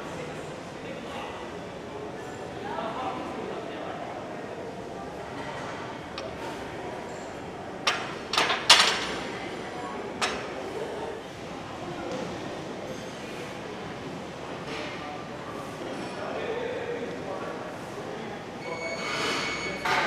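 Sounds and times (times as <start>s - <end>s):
gym room noise: 4.8s - 13.2s.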